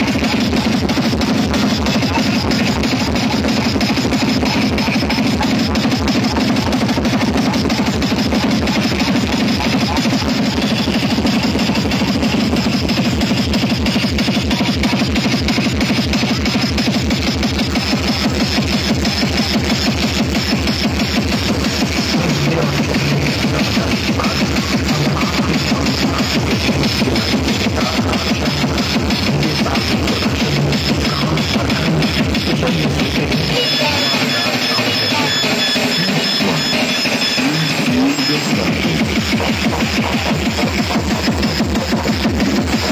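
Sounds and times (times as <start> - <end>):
loud electronic dance music: 0.0 - 42.9.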